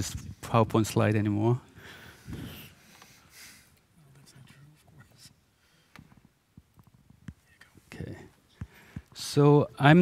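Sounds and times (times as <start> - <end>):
faint whispered talk: 3.8 - 5.5, 7.3 - 8.4.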